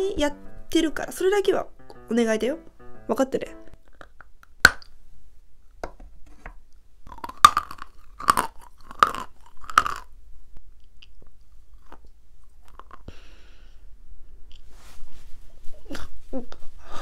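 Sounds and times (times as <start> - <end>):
crunchy chewing: 7.1 - 10.1.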